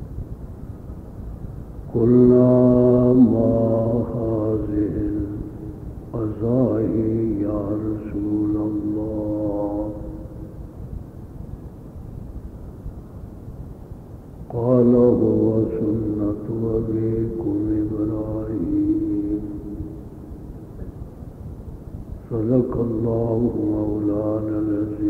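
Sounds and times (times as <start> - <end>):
background hiss: 0.0 - 25.0
man chanting melodic recitation: 1.9 - 10.5, 14.5 - 20.4, 22.2 - 25.0.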